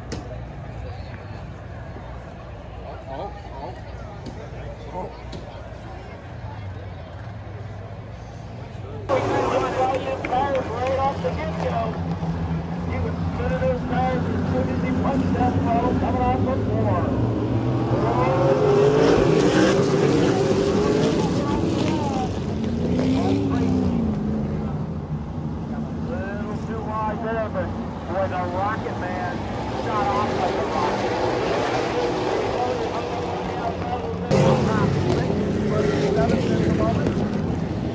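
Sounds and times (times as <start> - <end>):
crowd voices: 0.0 - 37.9
race car engines passing: 0.0 - 37.9.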